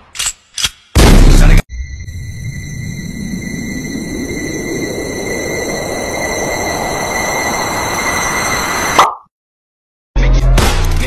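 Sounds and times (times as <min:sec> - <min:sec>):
high whistling tones: 0:01.7 - 0:09.1
electronic noise riser: 0:02.0 - 0:09.1.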